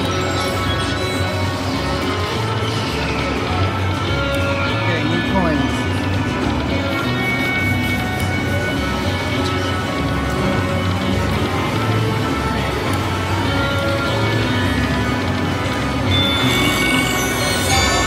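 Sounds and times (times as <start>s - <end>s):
slot machine bonus music: 14.7s - 18.0s
bright high chimes: 16.0s - 18.0s.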